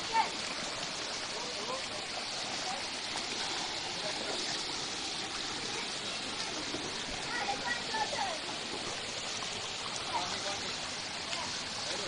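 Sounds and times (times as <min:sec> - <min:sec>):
stream running over rocks: 0:00.0 - 0:12.0.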